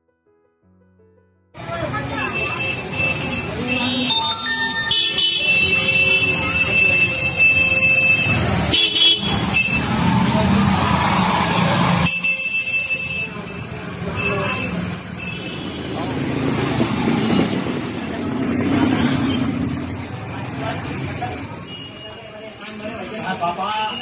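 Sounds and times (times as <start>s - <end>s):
motorcycle and scooter engines passing: 1.6s - 4.1s, 5.4s - 12.2s, 13.2s - 23.6s
people's voices: 1.6s - 8.7s, 9.3s - 12.1s, 12.9s - 24.0s
high beeping tone: 4.1s - 6.9s.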